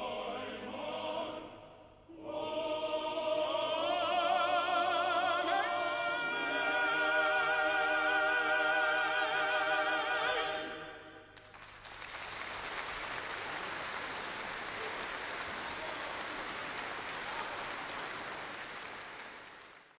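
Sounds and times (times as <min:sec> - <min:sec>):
male choir holding chord: 0:00.0 - 0:11.2
audience applause: 0:11.4 - 0:20.0.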